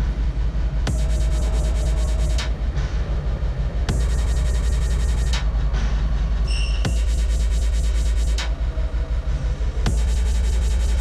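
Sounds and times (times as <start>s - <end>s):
low rumbling drone: 0.0s - 11.0s.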